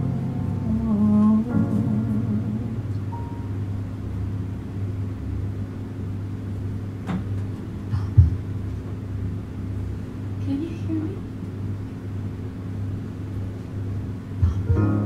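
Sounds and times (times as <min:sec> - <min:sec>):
low room hum and rumble: 0:00.0 - 0:15.0.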